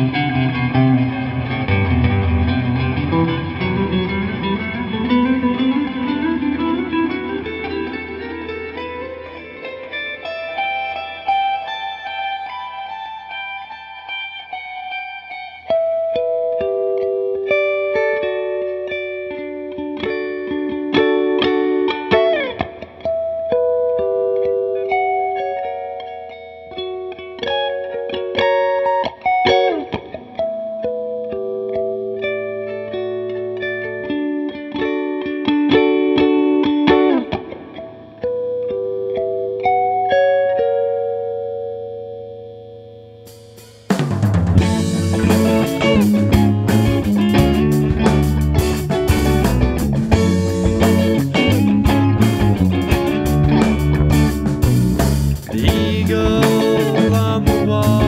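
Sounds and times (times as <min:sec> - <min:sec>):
guitar playing with slides: 0:00.0 - 0:58.0.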